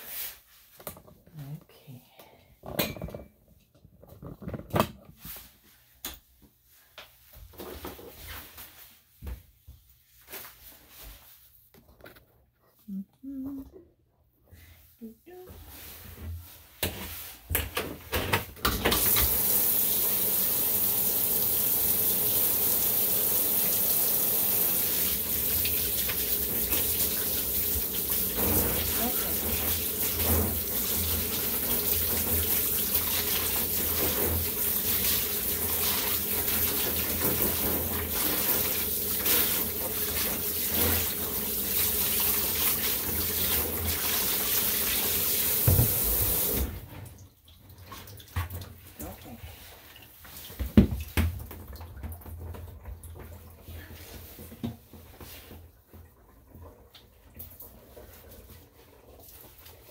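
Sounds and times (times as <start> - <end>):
water running from tap: 18.8 - 53.4.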